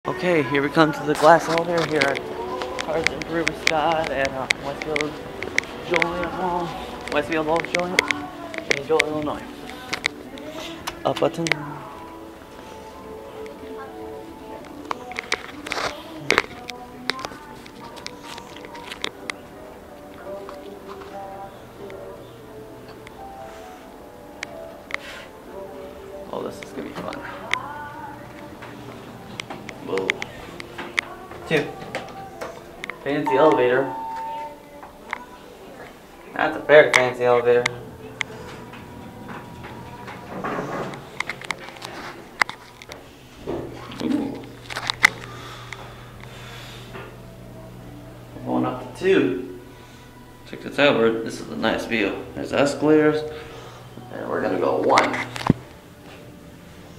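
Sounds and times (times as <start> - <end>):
background music over loudspeakers: 0.0 - 56.9
elevator doors closing: 33.3 - 34.6, 37.7 - 41.7
faint thin tone: 33.3 - 34.6.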